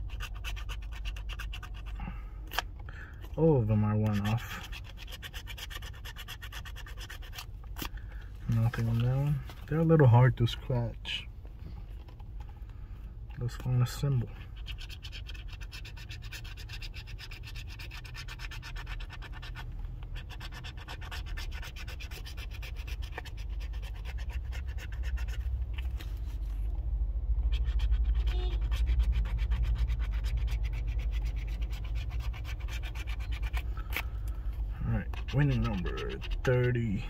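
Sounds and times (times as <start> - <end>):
coin scratching lottery ticket: 0.0 - 2.1, 3.5 - 7.5, 13.5 - 25.6, 27.4 - 37.0.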